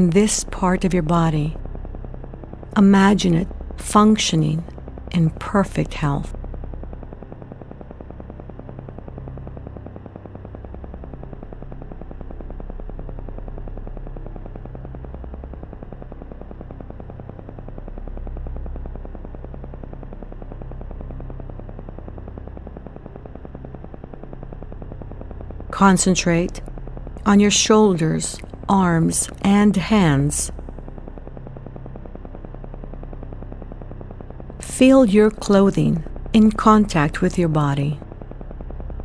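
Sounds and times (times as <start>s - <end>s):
low synth hum: 0.0s - 39.0s
rapid electronic pulsing: 0.0s - 39.0s.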